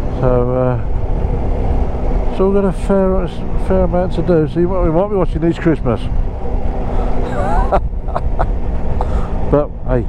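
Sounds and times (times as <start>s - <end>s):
road noise: 0.0s - 10.0s
wind noise: 0.0s - 10.0s.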